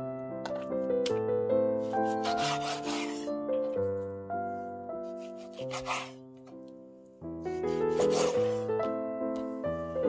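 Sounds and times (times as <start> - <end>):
background music: 0.0 - 10.0
knife slicing meat on wooden board: 1.9 - 3.3, 5.1 - 6.2, 7.6 - 8.6.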